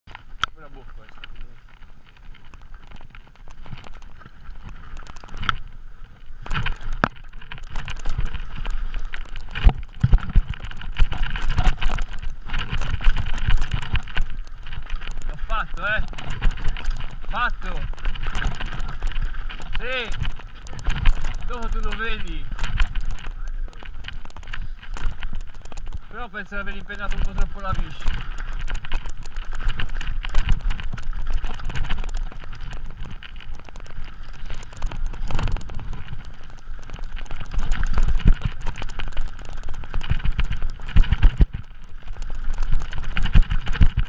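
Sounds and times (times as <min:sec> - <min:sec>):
bike tyres rolling on dirt trail: 0:00.0 - 0:44.0
bike knocking and clattering: 0:06.4 - 0:44.0.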